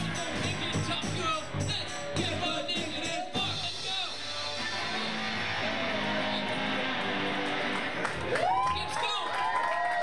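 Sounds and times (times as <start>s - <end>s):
electric guitar chords: 0.0s - 8.7s.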